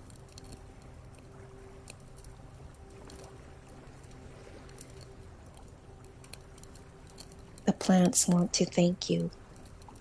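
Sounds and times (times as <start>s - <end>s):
light ticks: 0.0s - 10.0s
low hum: 0.0s - 10.0s.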